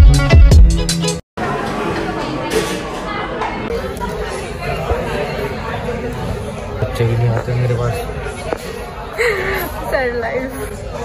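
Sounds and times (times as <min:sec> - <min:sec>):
indistinct chatter of people: 0:01.4 - 0:11.0.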